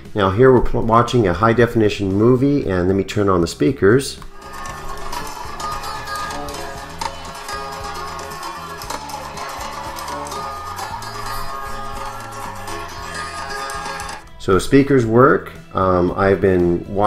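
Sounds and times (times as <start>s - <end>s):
soundtrack music from laptop speakers: 4.3s - 14.3s.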